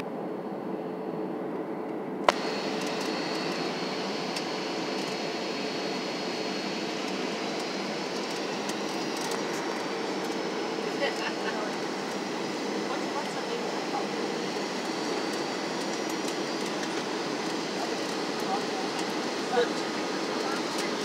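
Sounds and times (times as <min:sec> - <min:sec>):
airflow and jet engine noise: 0:00.0 - 0:21.0
faint high whine: 0:00.0 - 0:21.0.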